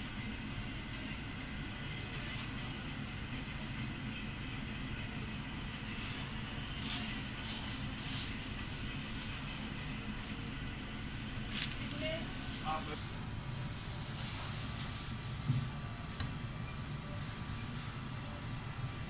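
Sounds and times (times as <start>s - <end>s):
low mechanical rumble: 0.0s - 19.0s.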